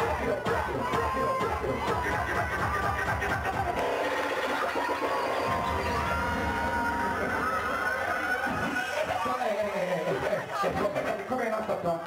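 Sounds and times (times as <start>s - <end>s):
crowd cheering: 0.0s - 11.2s
loud dancehall music: 0.0s - 11.8s.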